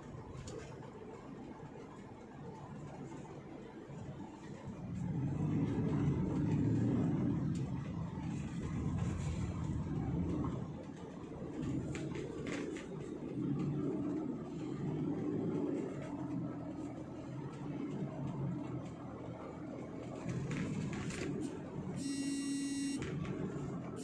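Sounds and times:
car road and engine rumble: 0:00.0 - 0:24.0.

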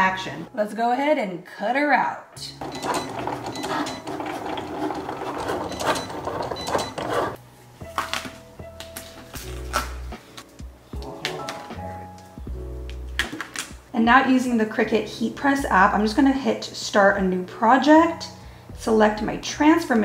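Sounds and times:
cutting machine carriage moving: 0:02.6 - 0:07.4
background music with bass line: 0:07.4 - 0:13.9.

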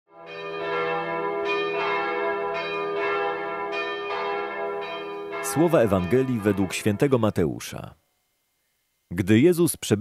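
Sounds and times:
bell strikes ringing: 0:00.3 - 0:07.3.

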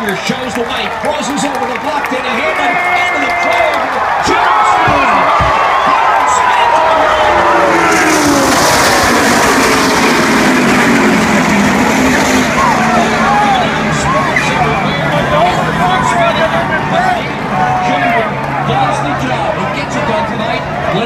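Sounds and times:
race car engines passing: 0:00.0 - 0:21.0
tyres skidding: 0:02.4 - 0:21.0
crash noise: 0:07.0 - 0:14.8.

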